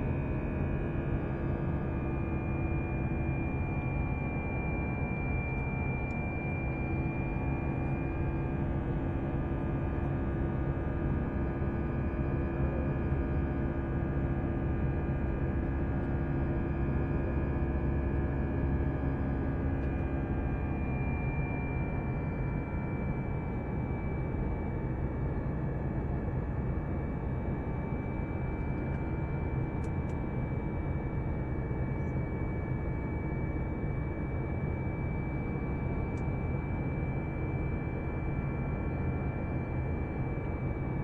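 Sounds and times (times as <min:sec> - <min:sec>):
airplane engine and airflow rumble: 0:00.0 - 0:41.0.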